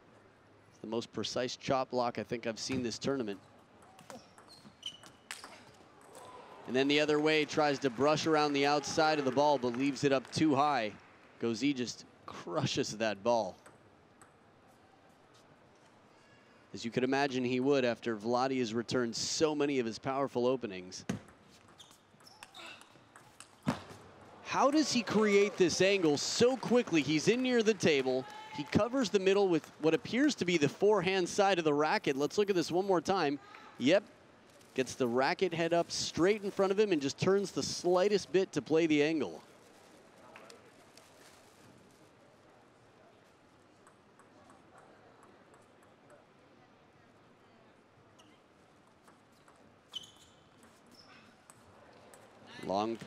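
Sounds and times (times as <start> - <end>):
table tennis ball bouncing: 3.8 - 6.3, 13.5 - 14.4, 21.1 - 25.2, 43.8 - 46.2, 48.8 - 49.6, 50.5 - 52.3.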